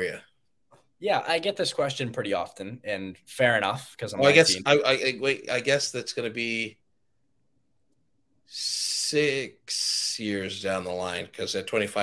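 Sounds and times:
man speaking: 0:00.0 - 0:00.4, 0:01.0 - 0:06.8, 0:08.5 - 0:12.0.

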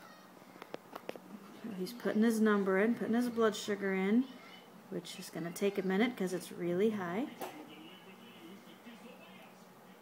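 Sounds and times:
woman speaking: 0:01.5 - 0:09.7.

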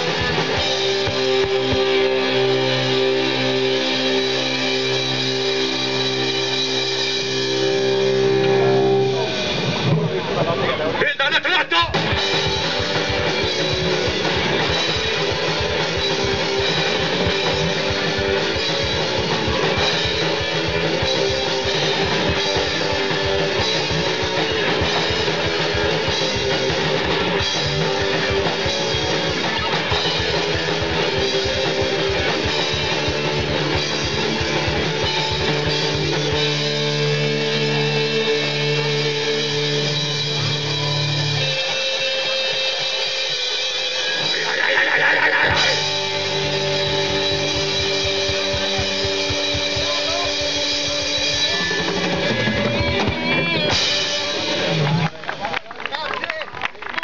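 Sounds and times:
punk band playing live: 0:00.0 - 0:57.0.

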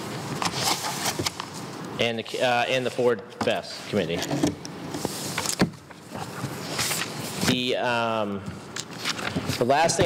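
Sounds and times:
paper rustling: 0:00.3 - 0:01.6, 0:05.0 - 0:07.5.

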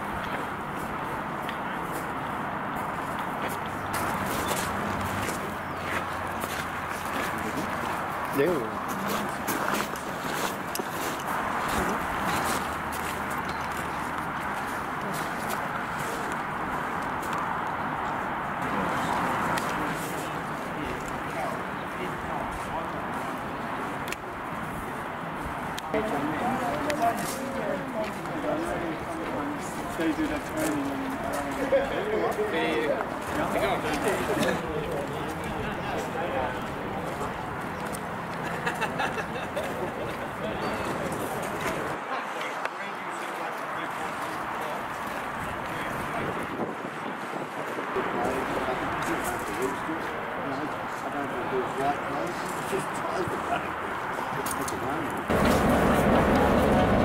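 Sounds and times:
people talking: 0:07.0 - 0:10.5, 0:18.6 - 0:24.4, 0:25.8 - 0:57.0
diesel locomotive engine running: 0:55.3 - 0:57.0.

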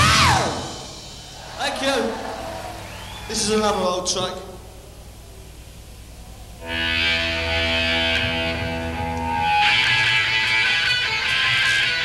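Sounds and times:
electric guitar chords: 0:06.5 - 0:12.0.

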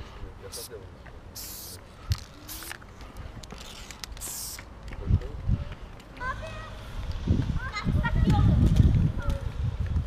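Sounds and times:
spray-paint can hissing: 0:01.4 - 0:02.8, 0:03.6 - 0:04.7.

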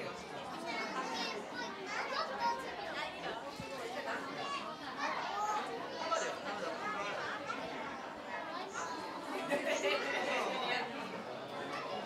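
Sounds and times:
crowd chatter in echoing hall: 0:00.0 - 0:12.0.

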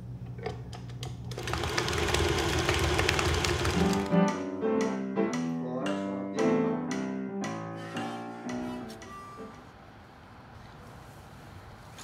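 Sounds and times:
stand mixer rattling: 0:01.4 - 0:04.1.

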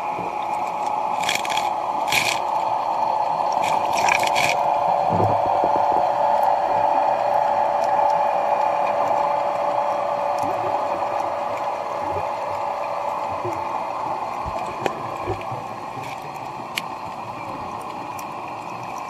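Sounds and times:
muffled underwater rushing: 0:00.0 - 0:19.0.

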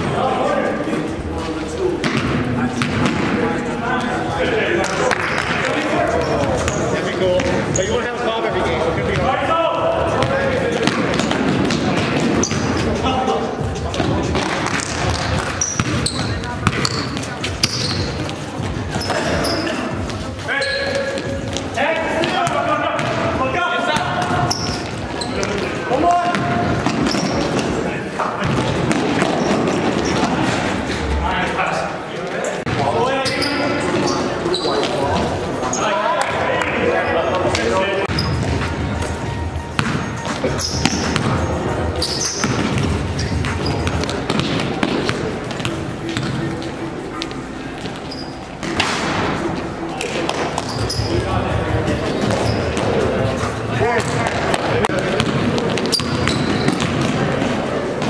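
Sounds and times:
basketball bouncing on court: 0:02.0 - 0:03.3, 0:10.1 - 0:12.9, 0:13.6 - 0:19.3, 0:22.2 - 0:23.4, 0:26.2 - 0:27.7, 0:28.4 - 0:30.4, 0:39.7 - 0:46.4, 0:54.0 - 0:57.4.

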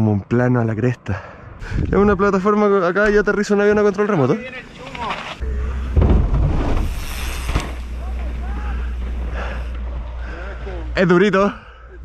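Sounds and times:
wind buffeting microphone: 0:01.5 - 0:02.4
bike landing thud: 0:04.9 - 0:09.3.

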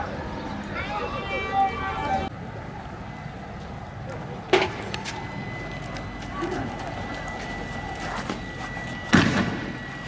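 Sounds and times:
steady background noise: 0:00.0 - 0:10.0
voices calling out: 0:00.0 - 0:10.0
sharp bang with echo: 0:09.1 - 0:09.8.

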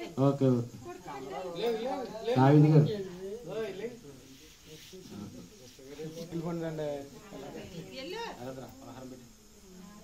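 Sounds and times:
light background hiss: 0:00.0 - 0:10.0
people talking indistinctly: 0:00.0 - 0:10.0.

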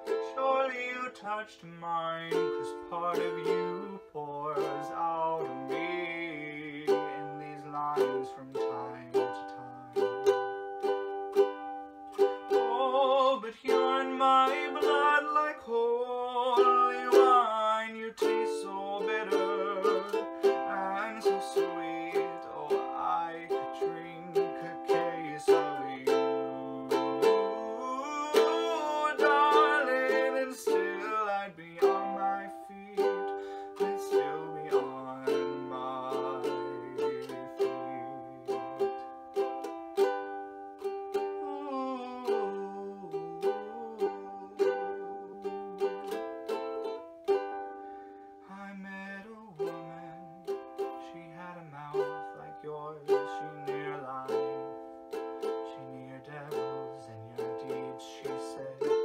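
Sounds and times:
ukulele strumming chords: 0:00.0 - 0:59.0.

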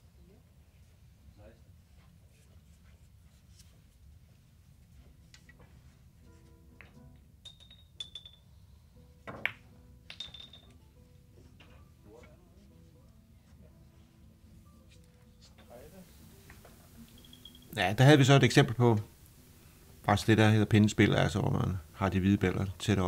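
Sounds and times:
billiard balls clicking: 0:06.8 - 0:08.5, 0:09.3 - 0:10.9.

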